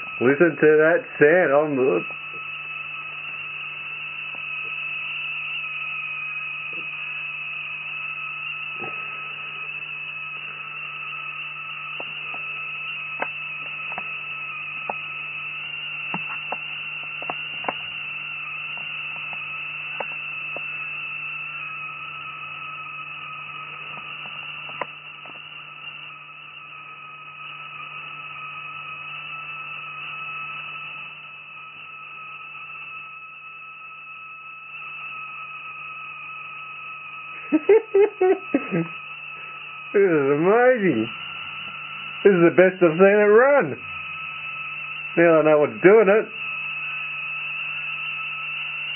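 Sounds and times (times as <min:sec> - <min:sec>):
high-pitched electrical whine: 0:00.0 - 0:48.9
low electrical hum: 0:00.0 - 0:48.9.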